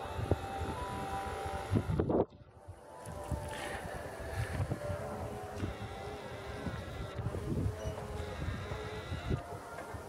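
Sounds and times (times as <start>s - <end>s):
faint steady tones: 0.0s - 10.0s
wind buffeting microphone: 0.0s - 10.0s.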